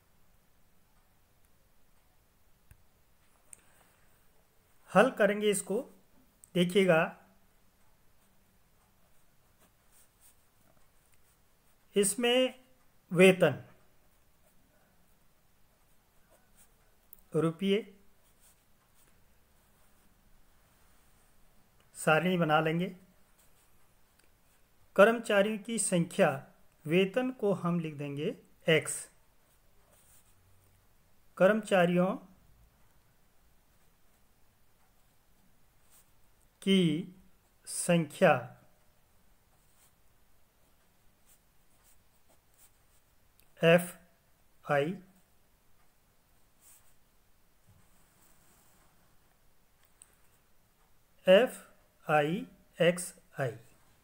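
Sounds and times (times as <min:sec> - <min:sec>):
ballpoint pen scratching on paper: 0:07.9 - 0:11.9.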